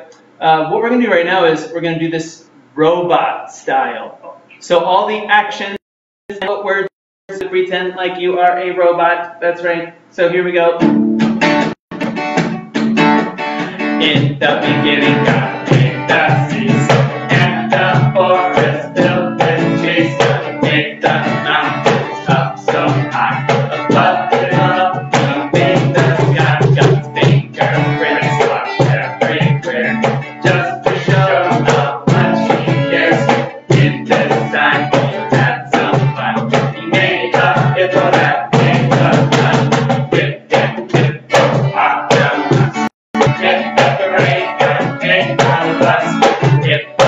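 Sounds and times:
acoustic guitar strumming: 10.8s - 47.0s
box drum beating: 14.1s - 47.0s.

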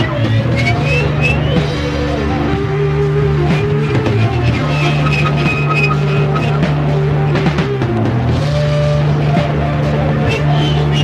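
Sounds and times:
heavy psychedelic rock: 0.0s - 11.0s
drum hits: 3.6s - 8.2s.

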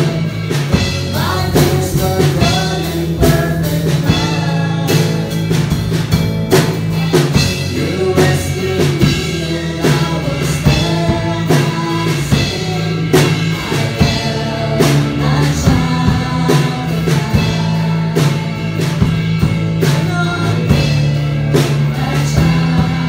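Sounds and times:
bass guitar: 0.0s - 23.0s
drum kit beat: 0.0s - 23.0s
group singing worship song: 0.0s - 23.0s
guitar: 0.0s - 23.0s.

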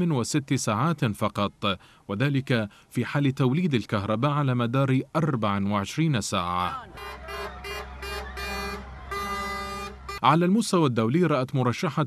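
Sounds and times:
diesel engines rumbling: 6.4s - 10.3s
truck air horn blasts: 6.7s - 10.3s.

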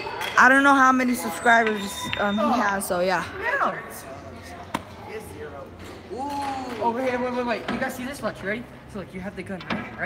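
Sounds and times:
faint chatter in a large hall: 0.0s - 10.0s.

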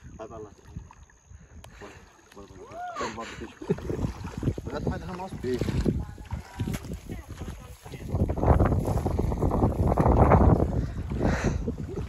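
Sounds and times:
wind buffeting microphone: 3.7s - 12.0s.

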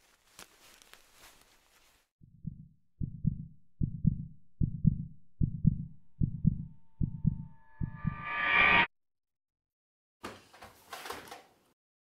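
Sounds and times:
heartbeat double thump: 2.2s - 8.3s
swell of noise and tone: 6.9s - 8.9s.

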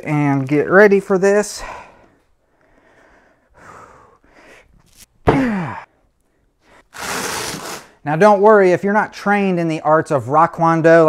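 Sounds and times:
man breathing sharply: 1.6s - 4.8s.

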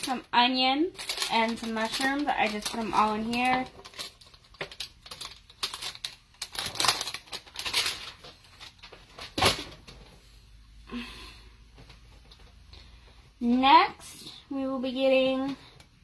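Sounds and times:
plastic bag crinkling: 0.0s - 9.9s.

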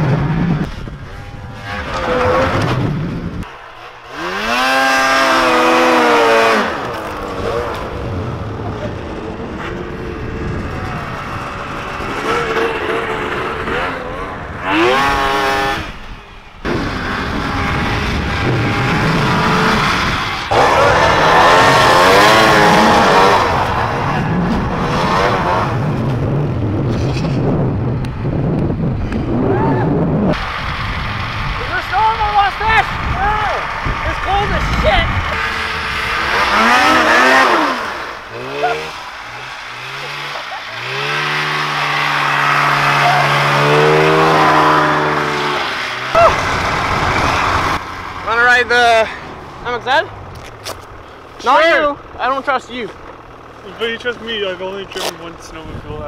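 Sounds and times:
snowmobile engines revving: 0.0s - 56.0s.

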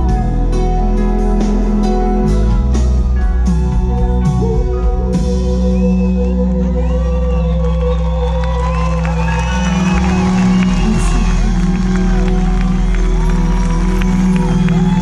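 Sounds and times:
live band playing: 0.0s - 15.0s
audience cheering and whooping: 6.0s - 15.0s.

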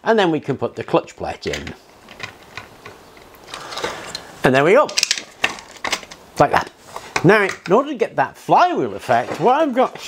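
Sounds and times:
plastic parts clicking and rattling: 1.4s - 6.2s.

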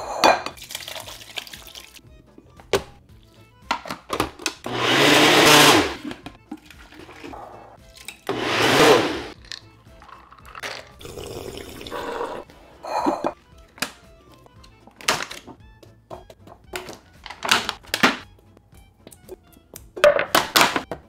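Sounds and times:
blender motor running: 4.7s - 6.1s, 8.3s - 9.4s.

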